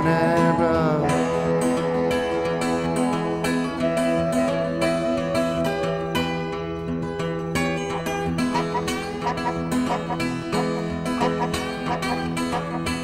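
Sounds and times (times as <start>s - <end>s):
sustained tones: 0.0s - 5.1s
picked guitar notes: 0.0s - 13.0s.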